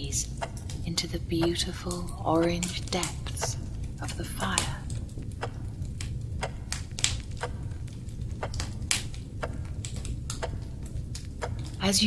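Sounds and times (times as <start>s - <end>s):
log fire crackling: 0.0s - 12.0s
low steady rumble: 0.0s - 12.0s.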